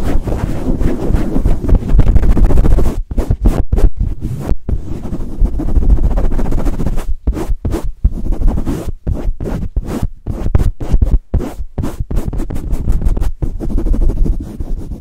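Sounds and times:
foam mic cover rubbing microphone: 0.0 - 15.0.

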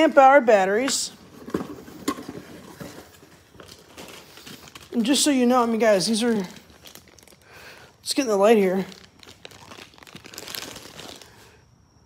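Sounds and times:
plastic packaging rustling: 1.1 - 11.5.

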